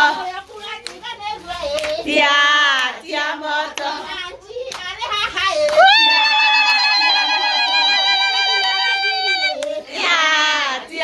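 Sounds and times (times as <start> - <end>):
women singing high-pitched: 0.0 - 11.0
hand claps: 0.8 - 1.1, 1.7 - 3.0, 3.7 - 4.0, 4.7 - 7.2, 9.5 - 10.1.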